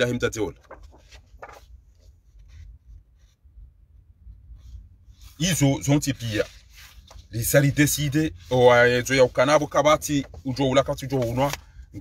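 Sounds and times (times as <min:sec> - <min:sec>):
paper sheets rustling: 0:00.2 - 0:02.7, 0:05.3 - 0:12.0
low steady rumble: 0:00.5 - 0:10.8.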